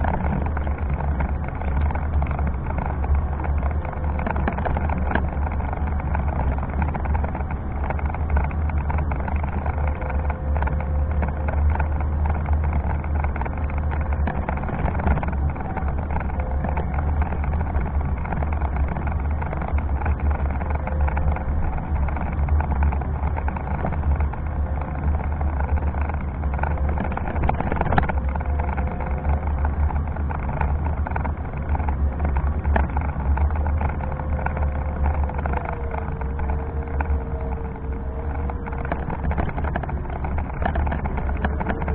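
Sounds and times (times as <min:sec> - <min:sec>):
faint motor whine: 0:00.0 - 0:41.9
wheelchair wheels rumbling on road: 0:00.0 - 0:41.9.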